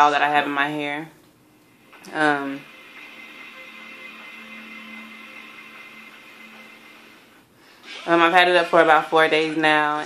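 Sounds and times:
faint hiss and hum: 0.0 - 10.0
soft sustained tones: 1.7 - 7.5.

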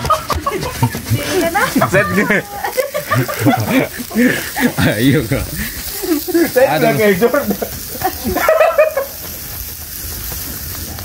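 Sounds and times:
chuckling: 0.0 - 9.7
people talking: 0.1 - 9.1.

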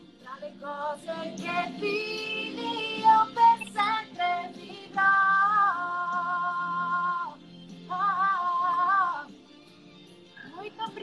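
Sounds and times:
backing music: 0.0 - 11.0
woman singing pop ballad: 0.2 - 9.4.

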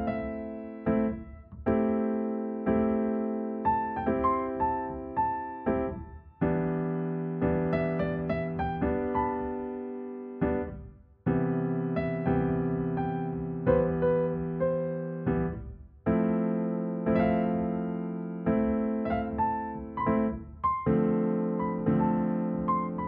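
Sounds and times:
solo piano chords and melody: 0.0 - 23.0.

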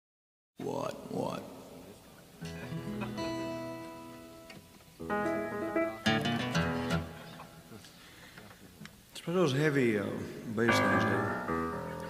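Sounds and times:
guitar chord ringing: 2.4 - 7.4, 10.7 - 12.0
plucked guitar notes: 2.4 - 7.6, 10.7 - 12.0.

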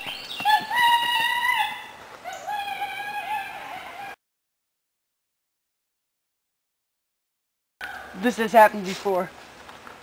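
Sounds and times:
high-pitched human wailing: 0.5 - 4.2.

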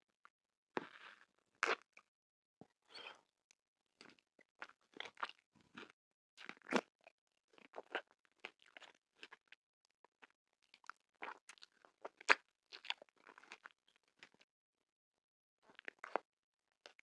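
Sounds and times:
crunching and chewing candy: 0.8 - 2.1, 4.0 - 14.5, 15.6 - 17.0.

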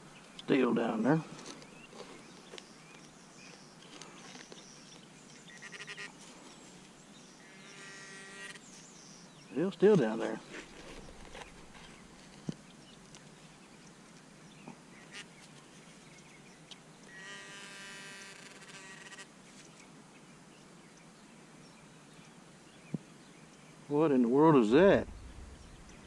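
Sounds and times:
hand tool scraping soil: 10.4 - 12.6.

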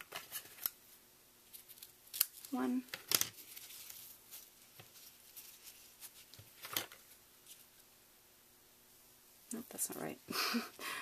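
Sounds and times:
ribbon rustling: 1.4 - 7.8.

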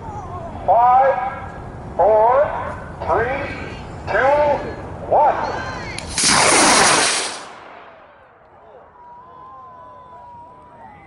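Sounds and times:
rocket launch whoosh: 6.1 - 8.2.

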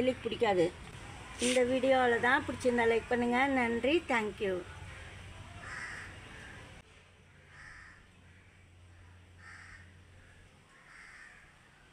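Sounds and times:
bird calling harshly: 4.9 - 6.6.

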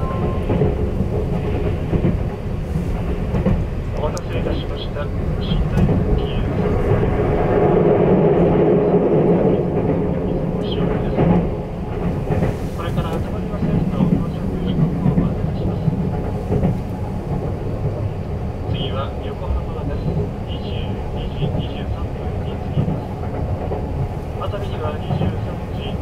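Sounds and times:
train rumbling on rails: 0.0 - 26.0
announcement over speaker: 4.0 - 6.7, 10.3 - 11.4, 18.6 - 23.2, 24.4 - 26.0.

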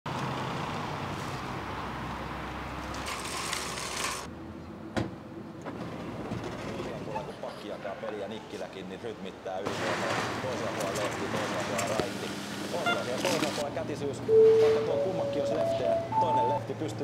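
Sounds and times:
outdoor traffic: 0.1 - 17.0.

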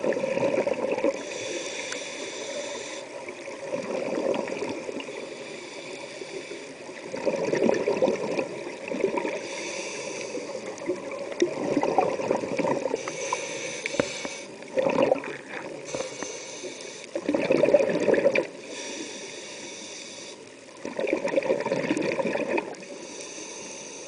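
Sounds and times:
exhaled bubbles gurgling: 0.0 - 1.4, 2.5 - 5.6, 6.8 - 14.0, 14.6 - 16.2, 17.0 - 19.0, 20.6 - 23.0
hissing inhale through regulator: 1.1 - 3.7, 4.8 - 7.1, 9.2 - 11.0, 12.8 - 14.8, 15.6 - 17.3, 18.4 - 20.8, 22.6 - 24.0.

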